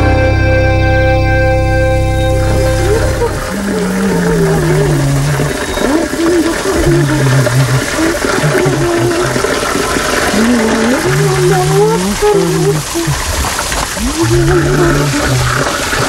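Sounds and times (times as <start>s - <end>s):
indistinct voices: 2.2s - 16.0s
water pouring and splashing: 2.4s - 16.0s.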